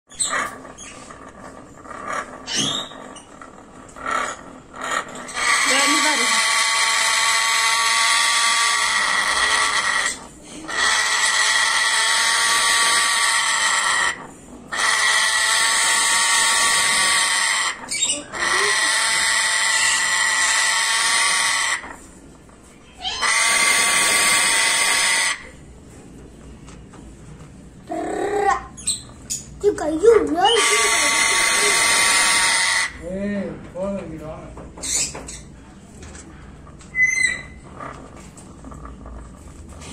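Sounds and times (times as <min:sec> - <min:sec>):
parrot harsh angry calls: 0:04.0 - 0:22.0, 0:23.0 - 0:25.5, 0:30.3 - 0:33.0, 0:36.9 - 0:37.9
parrot short calls: 0:30.4 - 0:33.0.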